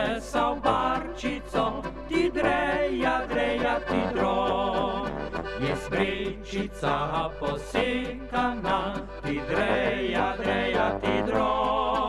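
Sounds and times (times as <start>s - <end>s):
accordion: 0.0s - 12.0s
folk band instrumental: 0.0s - 12.0s.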